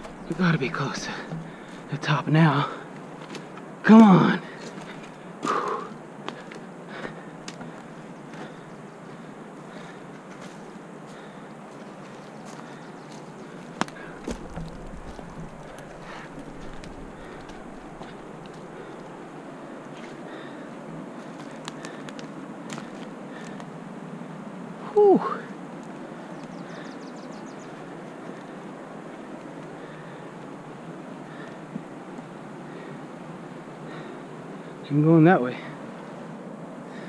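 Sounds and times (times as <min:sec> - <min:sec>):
footsteps: 0:00.0 - 0:01.9, 0:09.8 - 0:19.2
rustling: 0:13.6 - 0:19.1
low rumble on microphone: 0:14.0 - 0:19.0.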